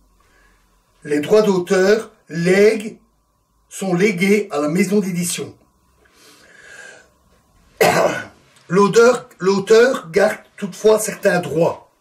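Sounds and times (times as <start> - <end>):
man clearing throat: 7.8 - 8.4.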